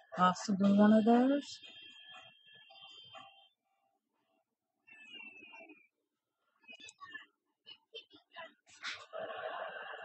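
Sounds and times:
faint indistinct background sounds: 0:00.0 - 0:10.0.

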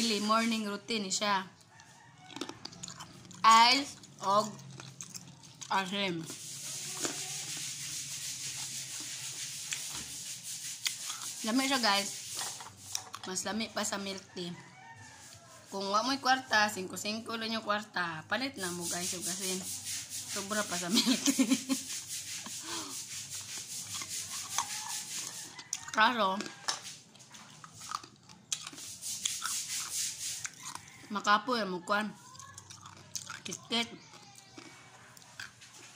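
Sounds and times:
person chewing food: 0:01.6 - 0:11.4, 0:12.6 - 0:13.3, 0:21.9 - 0:31.1, 0:32.3 - 0:35.9.

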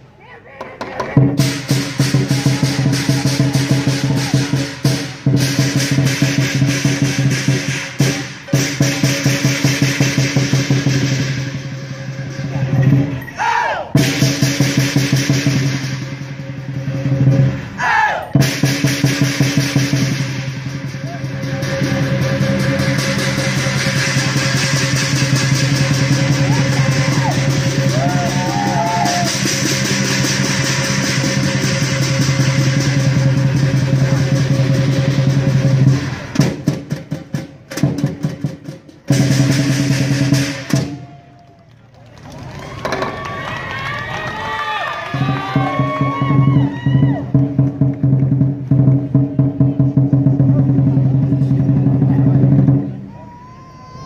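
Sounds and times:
large drum beaten fast: 0:00.8 - 0:13.2, 0:13.9 - 0:17.6, 0:18.3 - 0:41.1, 0:45.1 - 0:53.0
gong and cymbals ringing: 0:01.4 - 0:13.3, 0:18.4 - 0:36.4.

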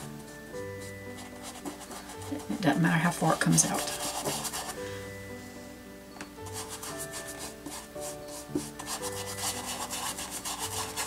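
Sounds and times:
soft background music: 0:00.0 - 0:11.0
brush scrubbing on canvas: 0:03.3 - 0:04.8, 0:06.6 - 0:11.0.

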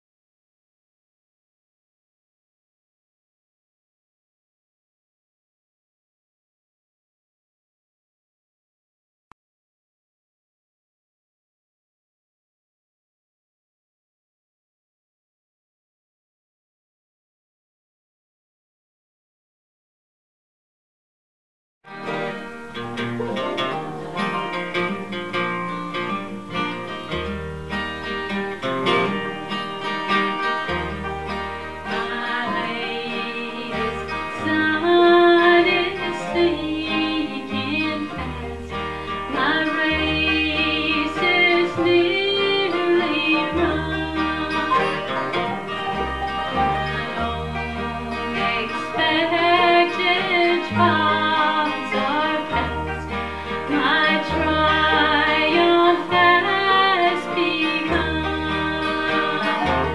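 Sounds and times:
plucked upright bass: 0:21.9 - 0:59.9
strummed acoustic guitars: 0:21.9 - 0:59.9
woman singing: 0:31.8 - 0:59.9.

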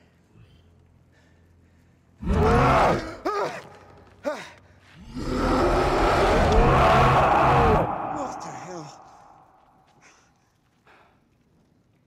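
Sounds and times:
deep creature roaring: 0:05.0 - 0:09.8.

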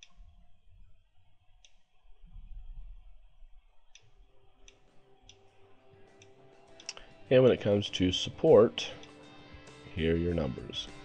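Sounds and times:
faint low rumble: 0:00.0 - 0:06.1
computer mouse clicks: 0:06.2 - 0:07.1.

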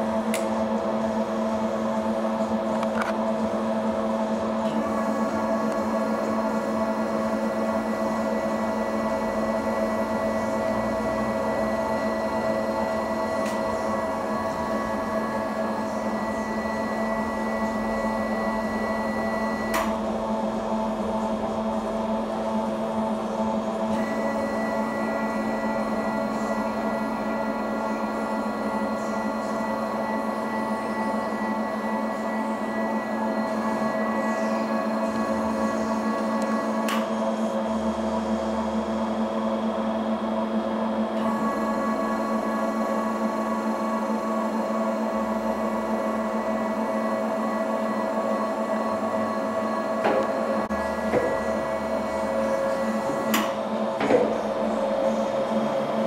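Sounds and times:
machine hum: 0:00.0 - 0:56.0.

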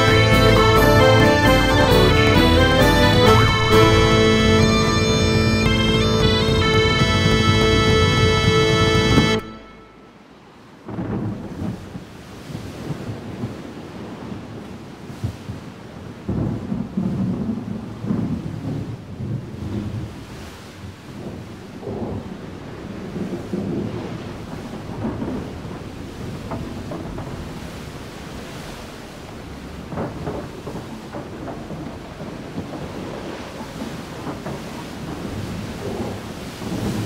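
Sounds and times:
bagpipe music: 0:00.0 - 0:10.2
rain hissing: 0:00.0 - 0:11.7, 0:21.7 - 0:37.0
rolling thunder: 0:10.8 - 0:15.6, 0:16.2 - 0:20.2, 0:21.2 - 0:37.0.

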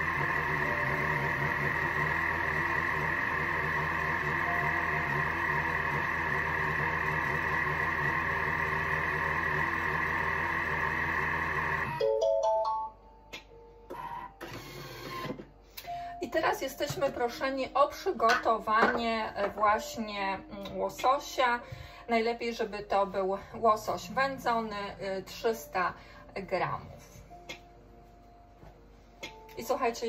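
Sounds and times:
food processor motor and blades: 0:00.0 - 0:12.0, 0:13.9 - 0:15.4.

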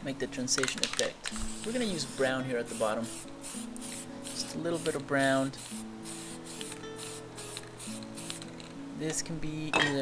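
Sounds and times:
background music with held notes: 0:00.0 - 0:10.0
spray paint can bursts: 0:01.3 - 0:08.5.

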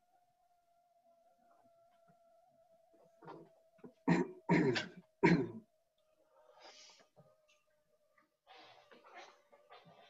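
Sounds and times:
person coughing: 0:04.0 - 0:05.6
soft breath: 0:06.2 - 0:07.3.

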